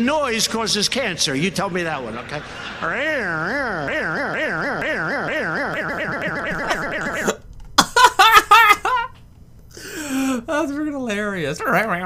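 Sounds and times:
man laughing: 0:02.2 - 0:09.2
warbling voice-like tone: 0:02.8 - 0:07.4.

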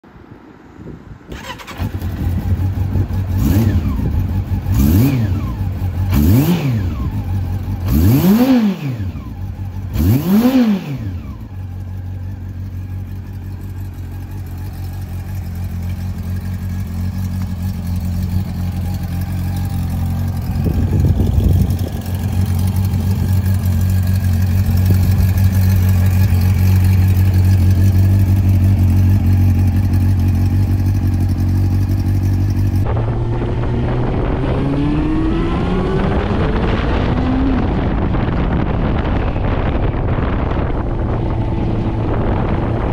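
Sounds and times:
motorcycle revving and accelerating: 0:01.3 - 0:42.9
motorcycle engine idling: 0:01.4 - 0:08.2, 0:09.0 - 0:33.0.

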